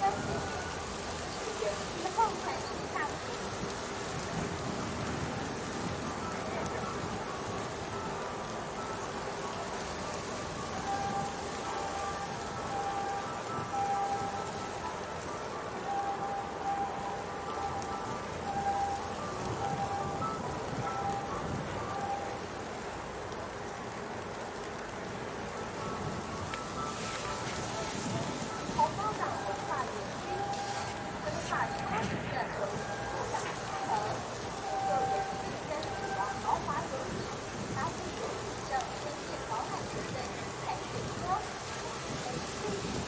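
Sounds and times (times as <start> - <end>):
wind and water hiss: 0.0 - 43.0.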